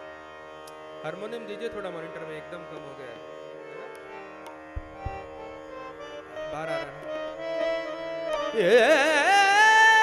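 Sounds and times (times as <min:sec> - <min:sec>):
tanpura drone: 0:00.0 - 0:10.0
tabla bass drum thumps: 0:04.7 - 0:05.6.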